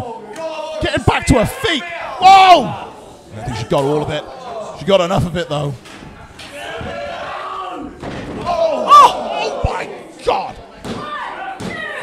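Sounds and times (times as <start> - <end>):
voices shouting: 6.5 - 12.0
loud yell: 7.0 - 9.9.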